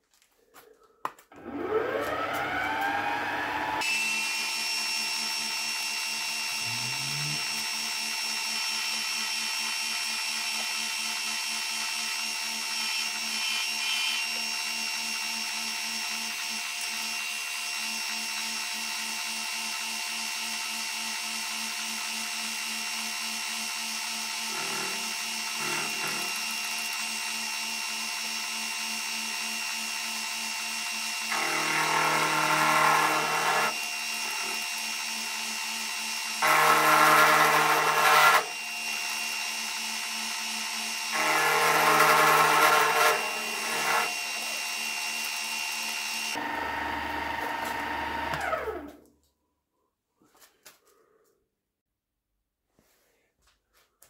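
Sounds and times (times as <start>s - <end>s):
whining milling spindle motor: 1.4s - 20.9s, 22.0s - 48.8s
end mill cutting metal part: 24.2s - 26.7s.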